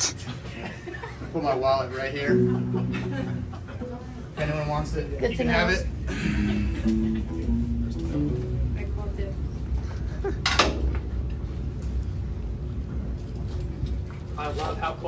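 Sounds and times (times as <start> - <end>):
low instrument notes: 2.3 - 4.8, 6.2 - 9.6
amplifier hum: 2.3 - 9.6.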